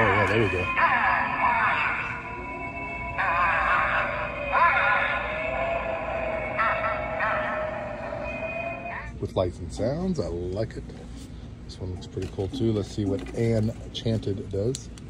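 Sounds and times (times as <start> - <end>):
eerie warbling voice-like sounds: 0.0 - 9.2
spooky music through small speaker: 0.0 - 9.2.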